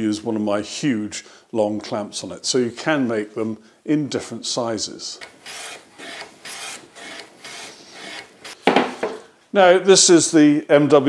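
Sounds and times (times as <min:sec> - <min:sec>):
hand plane rasping on wood: 0:05.2 - 0:08.6.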